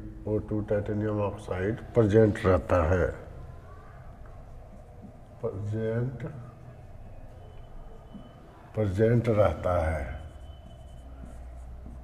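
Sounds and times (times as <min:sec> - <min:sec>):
marker pen writing on whiteboard: 0:04.2 - 0:05.7, 0:06.6 - 0:12.0.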